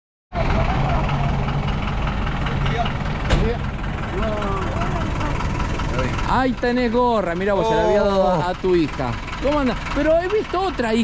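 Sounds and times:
low outdoor rumble: 0:00.3 - 0:11.0
vehicle engine idling: 0:00.3 - 0:11.0.

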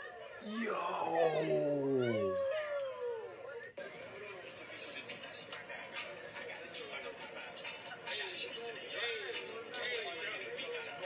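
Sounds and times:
man's wordless exclamation: 0:00.4 - 0:02.5
high wailing cry: 0:00.4 - 0:03.0.

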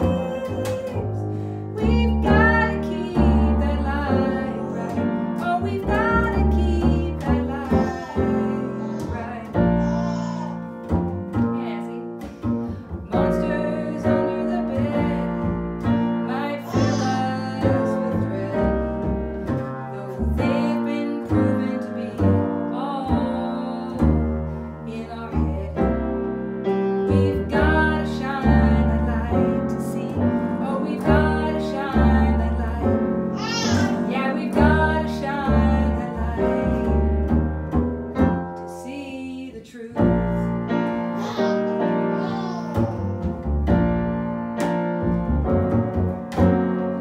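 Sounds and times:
woman singing: 0:00.0 - 0:10.2, 0:13.1 - 0:26.1, 0:27.0 - 0:37.2, 0:38.6 - 0:41.0
piano accompaniment: 0:00.0 - 0:47.0
upright double bass: 0:00.0 - 0:47.0.

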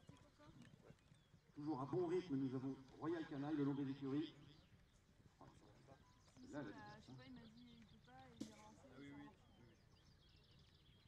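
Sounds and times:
low murmured talk: 0:05.3 - 0:10.8.

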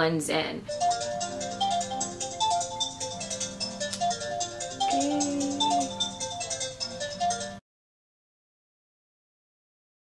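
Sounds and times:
phone ringtone melody: 0:00.7 - 0:07.6.

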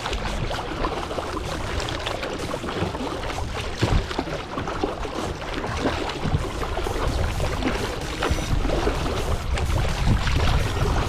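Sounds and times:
water splashing against kayak: 0:00.0 - 0:11.0.

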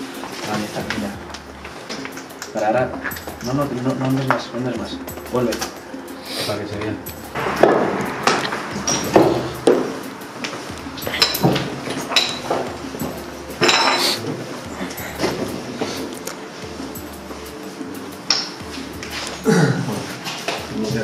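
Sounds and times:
faint musical drone: 0:00.0 - 0:21.0
clinks and knocks: 0:11.0 - 0:14.0.

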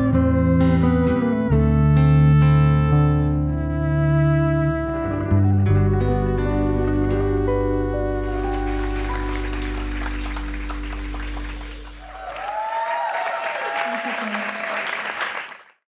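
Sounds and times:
band chord ringing out: 0:05.8 - 0:12.1
audience applause: 0:08.2 - 0:15.8
cheers and whoops: 0:11.5 - 0:15.3.

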